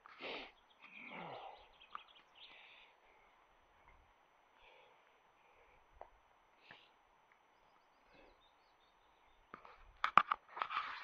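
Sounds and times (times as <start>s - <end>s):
faint bird chirps: 0.4s - 4.9s, 6.5s - 9.9s
camera handling clicks and rustle: 9.6s - 11.0s.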